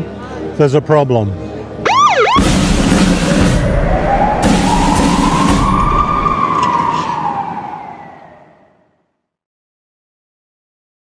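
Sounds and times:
siren wail: 1.8 - 9.0
music with low beat: 2.1 - 6.4.

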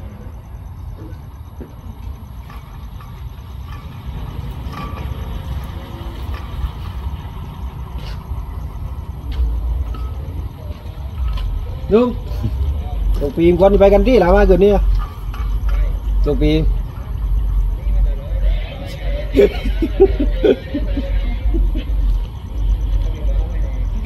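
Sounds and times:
diesel train rumble: 0.0 - 24.0.

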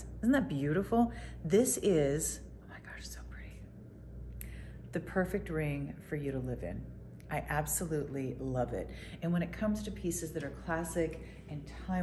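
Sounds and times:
low steady hum: 0.0 - 12.0
woman whispering: 2.5 - 3.8.

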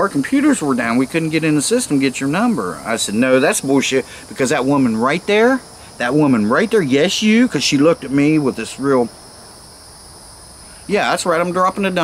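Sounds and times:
man talking: 0.0 - 9.1, 10.8 - 12.0
insects chirring: 0.0 - 12.0.

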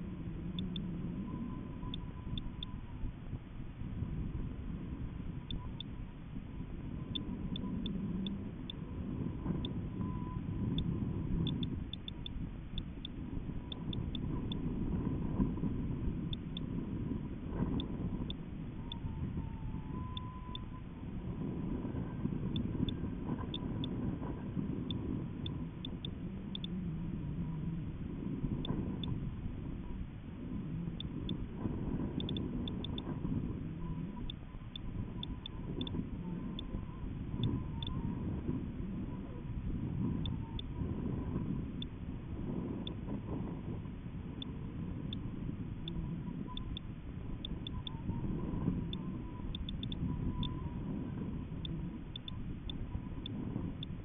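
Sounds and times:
wind buffeting microphone: 0.0 - 54.0
faint ticks: 0.1 - 3.1, 5.0 - 6.1, 7.0 - 30.0, 30.7 - 39.4, 40.0 - 54.0.

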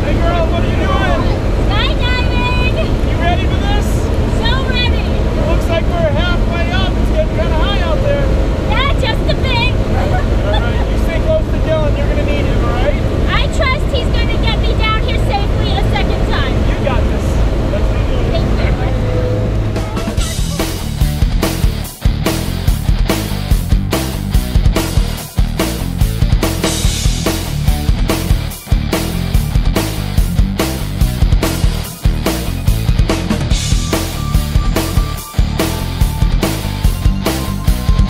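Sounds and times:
voices: 0.0 - 21.2
rock music: 18.3 - 38.0.

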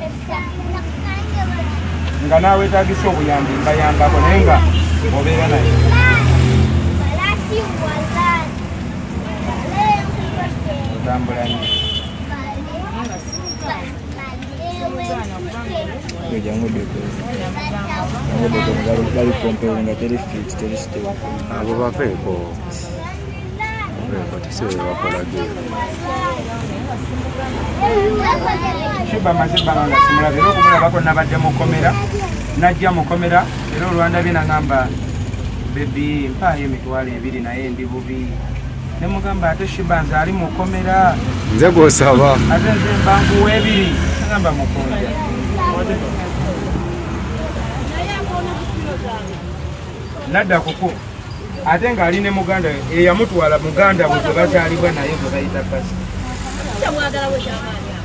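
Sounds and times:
man talking: 18.5 - 22.8, 24.0 - 25.5, 39.0 - 45.1.

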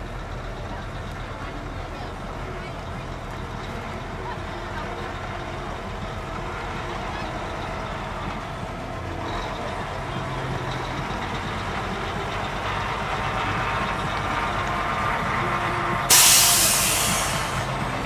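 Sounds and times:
diesel truck engine idling: 0.0 - 18.0
voices of people: 0.0 - 18.0.

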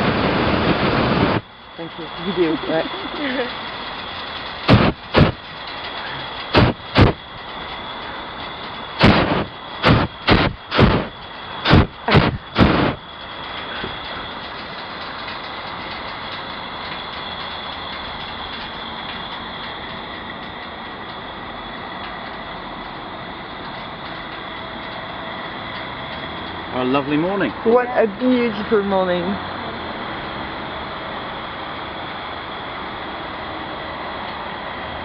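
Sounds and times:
propane burner whooshes: 0.0 - 35.0
quiet rushing noise: 0.0 - 35.0.

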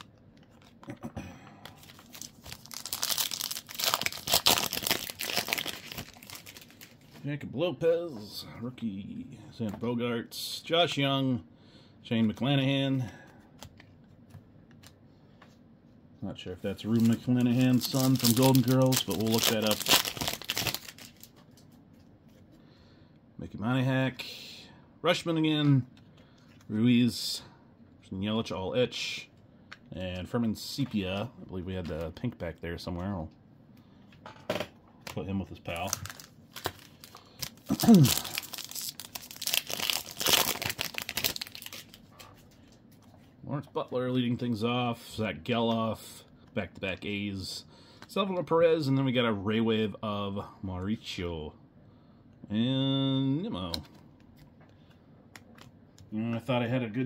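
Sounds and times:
foil wrapper crinkling and tearing: 1.8 - 7.1, 16.8 - 21.3, 35.7 - 42.4
man vocalizing: 37.7 - 38.4.

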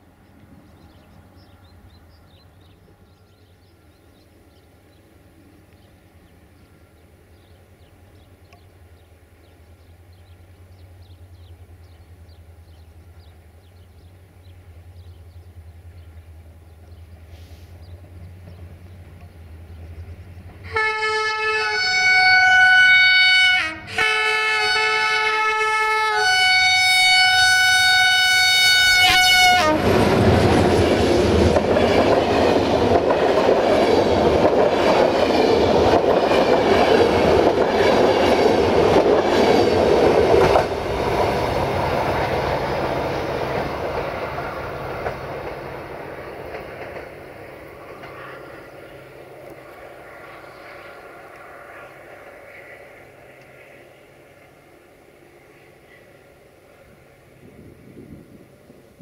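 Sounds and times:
locomotive air horn blasts: 20.7 - 30.0
train wheels clattering on rails: 29.8 - 53.8.

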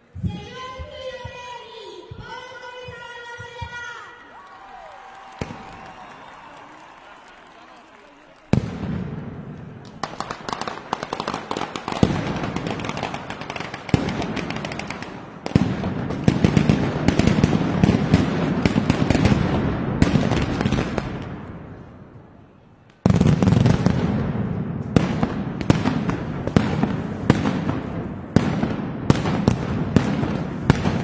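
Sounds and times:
firecrackers crackling: 4.5 - 21.7, 22.8 - 31.0.

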